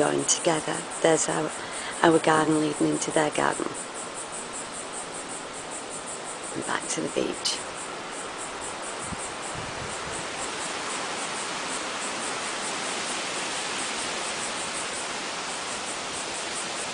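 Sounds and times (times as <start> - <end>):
insects chirping faintly: 0.0 - 16.9
wind hissing through trees: 0.0 - 16.9.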